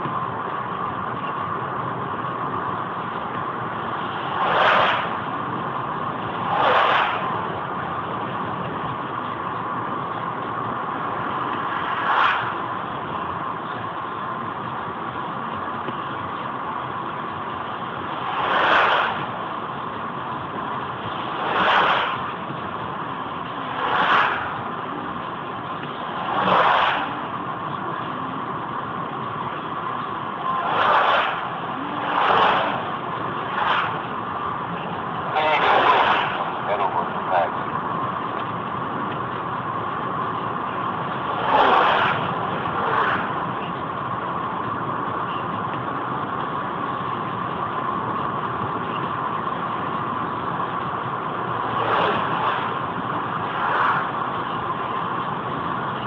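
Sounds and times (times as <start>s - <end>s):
road and tyre noise in car: 0.0s - 56.0s
vehicle passing whoosh: 4.0s - 5.2s, 6.3s - 7.5s, 26.0s - 27.2s.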